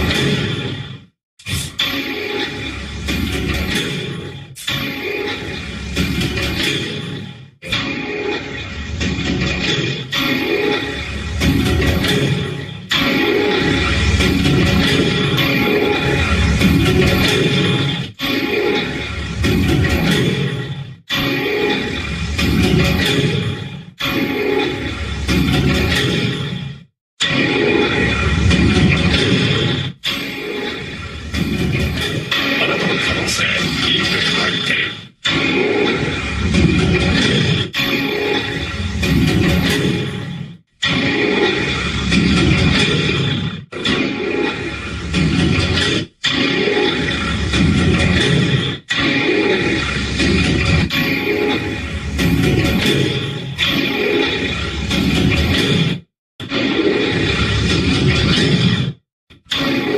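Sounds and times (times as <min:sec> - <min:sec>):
dense commercial music: 0:00.0 - 0:55.8.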